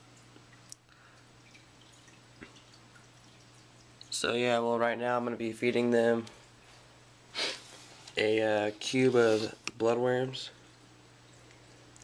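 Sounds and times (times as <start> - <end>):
aquarium water drips: 0.0 - 4.8, 9.6 - 12.0.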